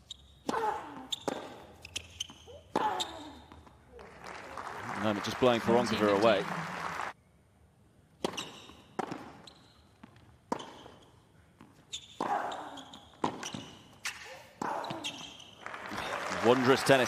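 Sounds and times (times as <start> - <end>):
stadium ambience: 2.5 - 17.0.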